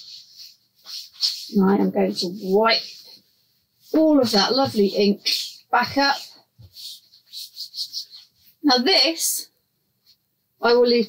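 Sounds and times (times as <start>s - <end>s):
wet paper swishing on a mat: 0.0s - 3.2s.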